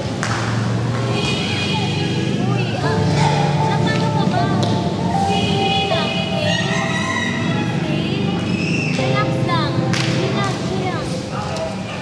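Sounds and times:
sustained background tones: 2.4 - 12.0.

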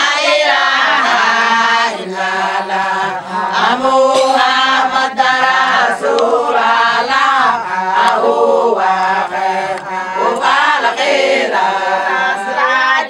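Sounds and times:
women singing devotional chant: 0.0 - 13.0.

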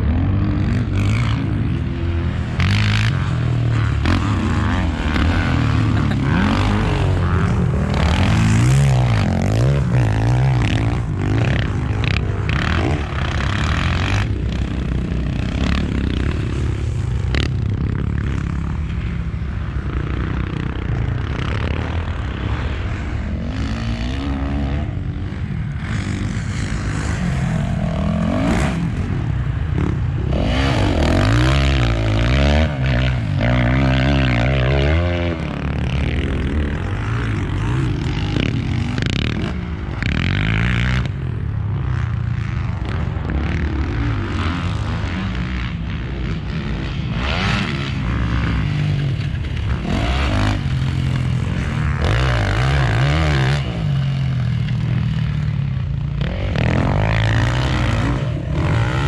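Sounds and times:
motocross bike engines revving: 0.0 - 59.0.

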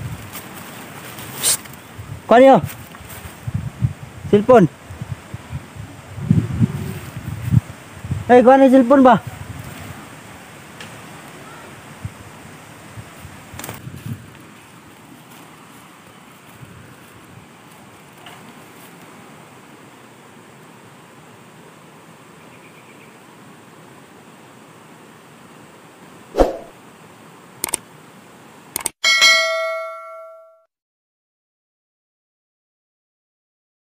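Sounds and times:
outdoor background hiss: 0.0 - 30.0
sharp thud: 26.4 - 26.8
bell-like ding chime: 29.0 - 30.7.

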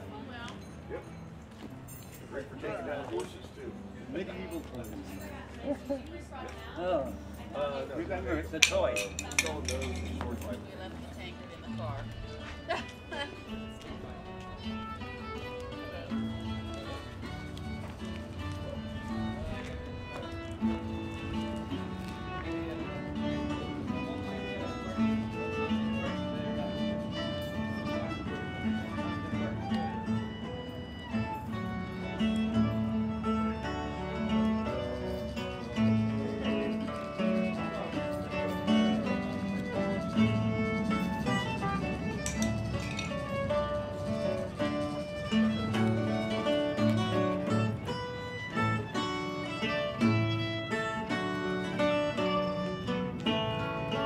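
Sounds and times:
acoustic guitar: 0.0 - 54.0
fiddle: 0.0 - 54.0
small plucked string instrument: 0.0 - 54.0.

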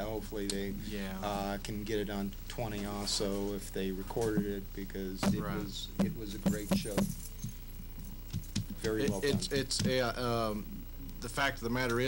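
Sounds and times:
man talking: 0.0 - 7.1, 8.8 - 12.0
steady low hum: 0.0 - 12.0.

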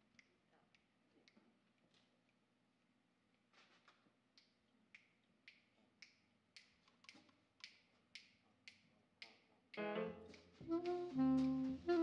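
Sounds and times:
finger snaps: 4.4 - 11.7
jazz band playing: 9.8 - 12.0
saxophone: 9.8 - 12.0.

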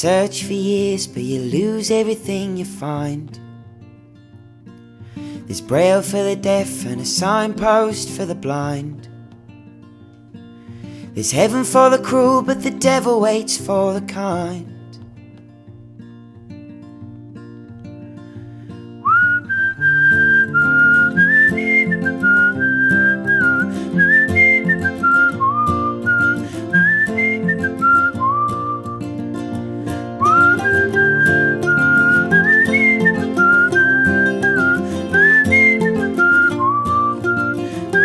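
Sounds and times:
acoustic guitar: 0.0 - 38.0
whistled melody: 18.9 - 29.2, 29.9 - 38.0.

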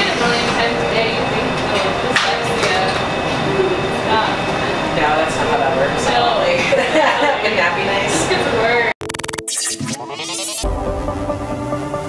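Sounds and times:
indistinct voices: 0.0 - 8.9.

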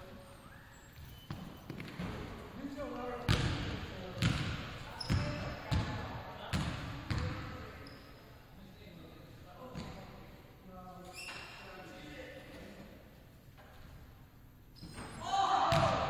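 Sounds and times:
basketballs bouncing on hardwood floor: 3.3 - 7.5, 15.7 - 16.0.

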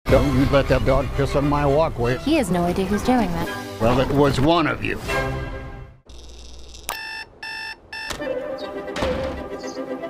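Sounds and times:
alarm clock electronic beeps: 6.9 - 8.2.

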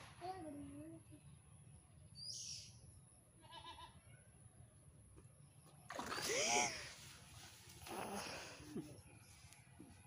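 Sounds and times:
faint high chirp: 2.1 - 3.0.

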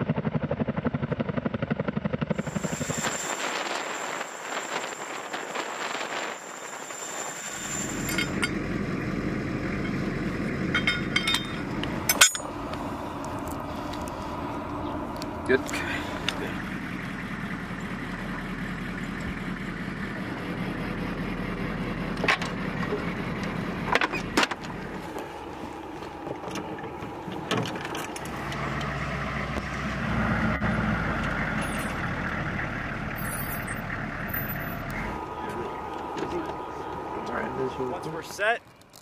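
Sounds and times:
steady low rumble: 0.0 - 39.0
steel chains clinking: 7.6 - 8.6, 10.7 - 12.5, 31.6 - 32.0, 33.2 - 34.8.

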